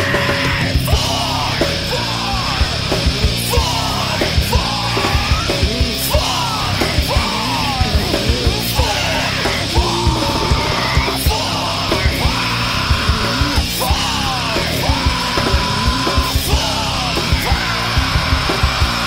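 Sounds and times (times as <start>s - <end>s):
busy drum beat: 0.0s - 19.0s
loud rock band: 0.0s - 19.0s
yelled vocals: 0.0s - 19.0s.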